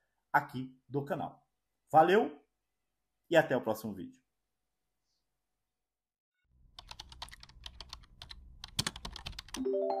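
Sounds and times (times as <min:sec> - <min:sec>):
computer keyboard typing: 0:06.7 - 0:09.6.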